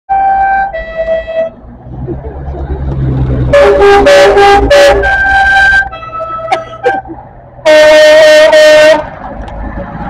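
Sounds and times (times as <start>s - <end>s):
coach engine running: 1.6s - 10.0s
loud multi-note horn blast: 3.4s - 7.0s, 7.6s - 9.2s
coach horn toots: 3.5s - 9.1s.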